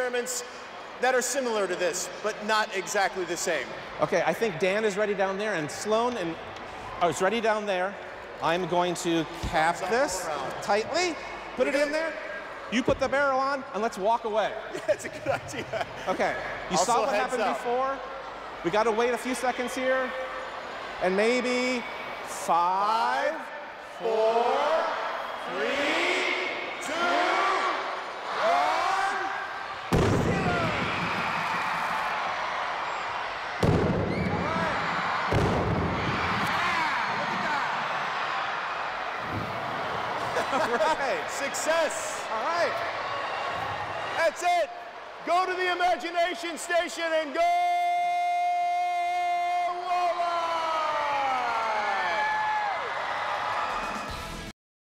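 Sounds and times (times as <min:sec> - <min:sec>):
loud bangs echoing in an arena: 0:25.9 - 0:41.9.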